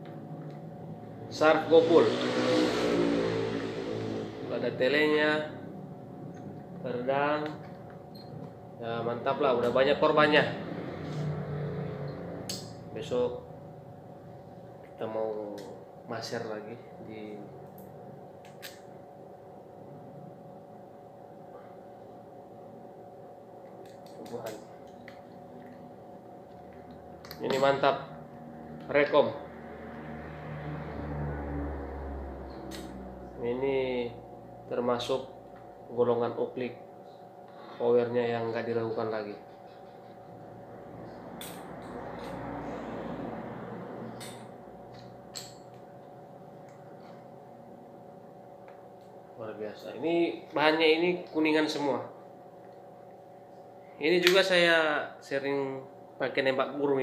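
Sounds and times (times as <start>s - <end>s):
steady background hum: 0.0s - 57.0s.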